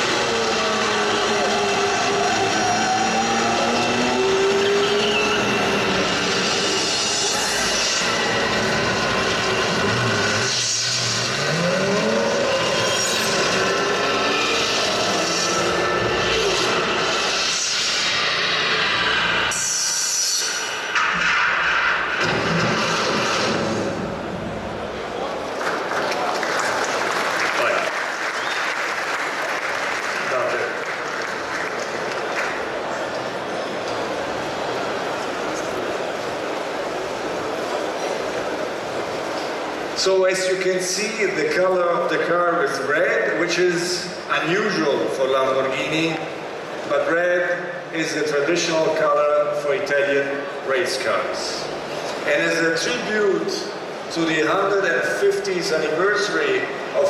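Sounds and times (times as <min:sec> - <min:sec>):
race car engines: 0:00.0 - 0:57.0.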